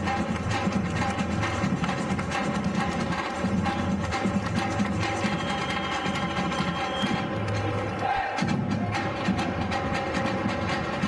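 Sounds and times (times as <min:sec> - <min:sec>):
samba percussion drumming: 0:00.0 - 0:11.0.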